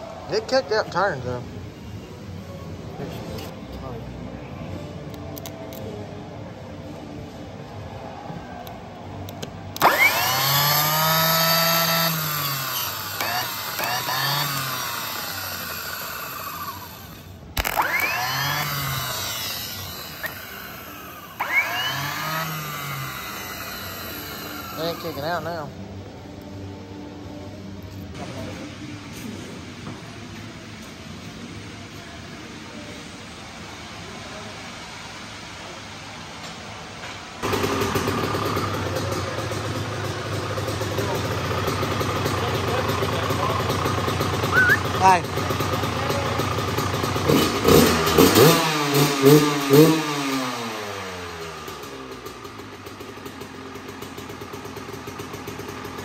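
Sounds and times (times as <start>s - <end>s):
starter motor click: 9.3s - 25.1s
starter motor whine: 9.3s - 25.8s.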